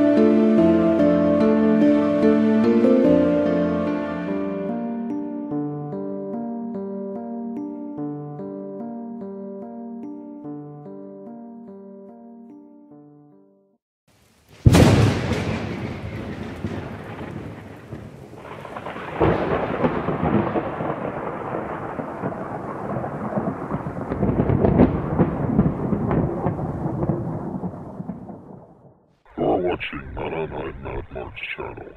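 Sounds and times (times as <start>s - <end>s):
rolling thunder: 14.6s - 29.0s
synthetic voice: 29.3s - 31.9s.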